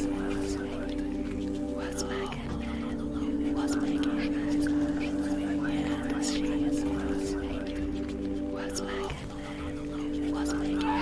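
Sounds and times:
low droning tones: 0.0 - 11.0
soft whispering voices: 0.0 - 11.0.

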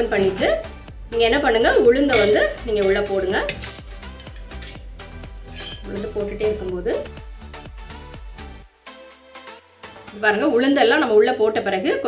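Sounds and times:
voice or music: 0.0 - 8.1, 9.8 - 12.0.

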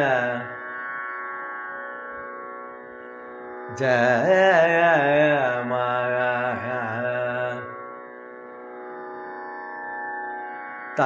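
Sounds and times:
man singing: 0.0 - 0.6, 3.7 - 7.8
steady drone: 0.0 - 11.0.

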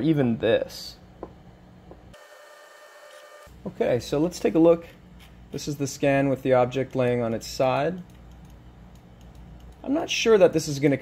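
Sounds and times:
scanner whine: 2.1 - 3.6.

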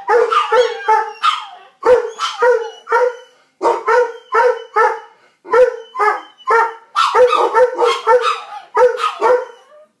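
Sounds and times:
dog barking: 0.0 - 9.7.

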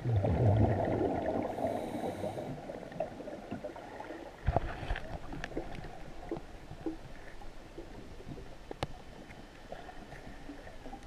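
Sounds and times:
underwater breath bubbles: 0.0 - 4.1.

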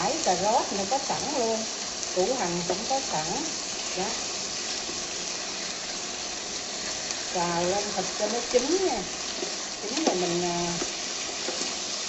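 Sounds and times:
meat sizzling in hot oil: 0.0 - 12.0.

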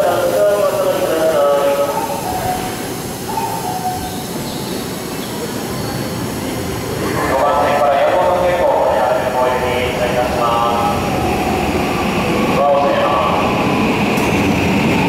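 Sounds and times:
public address announcement: 0.0 - 15.0
train equipment humming: 0.0 - 15.0.

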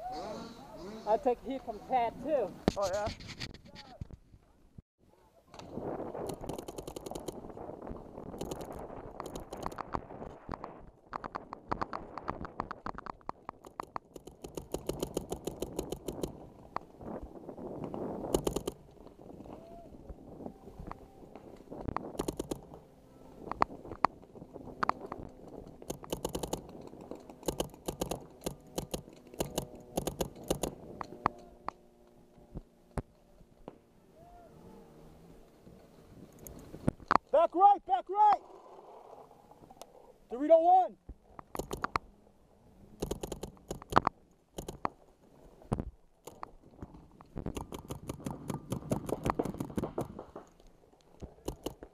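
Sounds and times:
paintball markers firing: 6.2 - 7.4, 11.2 - 16.4, 25.8 - 31.3, 47.4 - 50.6, 51.2 - 51.9.

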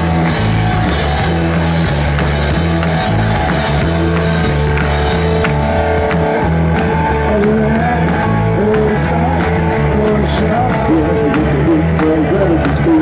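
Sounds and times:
bass and guitar: 0.0 - 13.0.

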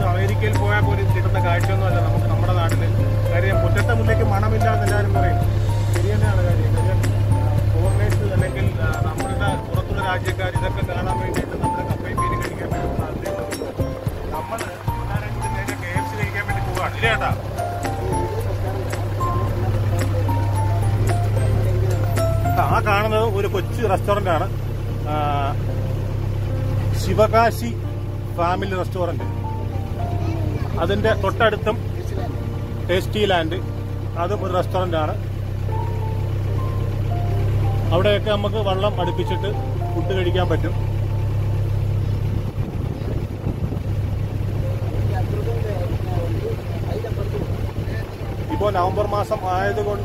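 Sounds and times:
boat engine droning: 0.0 - 50.0.

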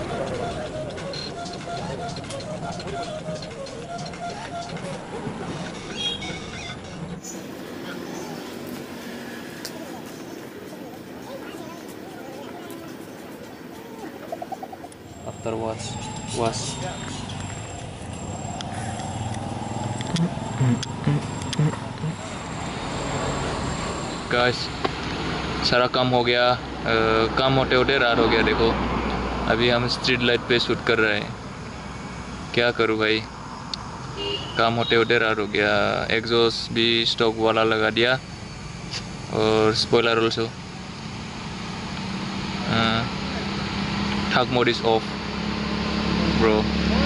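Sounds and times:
vehicle engine humming: 0.0 - 47.0
motor humming: 12.1 - 24.3
short low blips: 14.2 - 22.7
sharp clicks: 16.4 - 22.2.

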